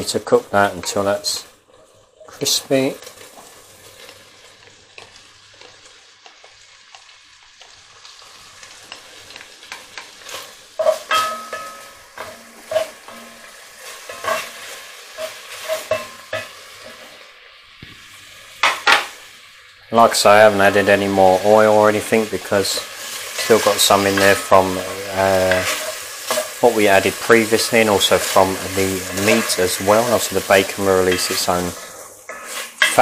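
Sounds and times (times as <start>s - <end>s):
bacon sizzling in oil: 0.0s - 33.0s
spoon scraping a pot: 10.2s - 17.1s, 32.3s - 33.0s.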